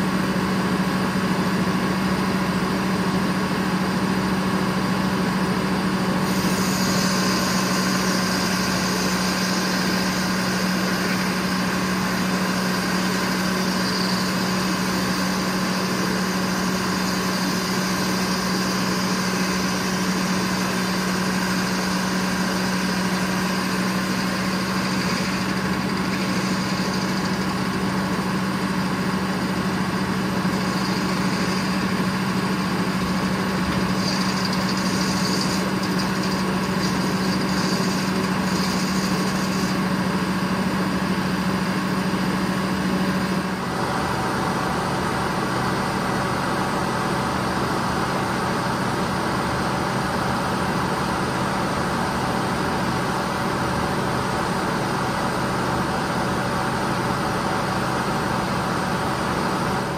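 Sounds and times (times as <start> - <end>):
circular saw humming: 6.2 - 46.8.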